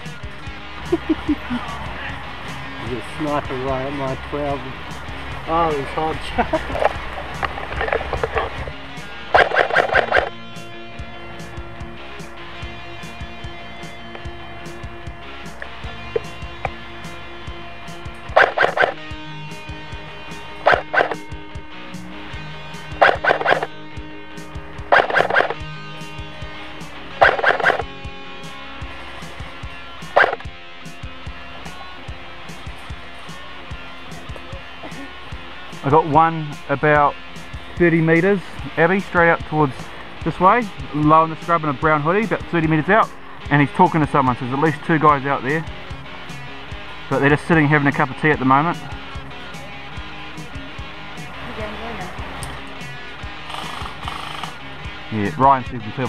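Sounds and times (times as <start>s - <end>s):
background music with steady tones: 0.0s - 56.0s
airsoft rifle automatic fire bursts: 53.4s - 54.6s.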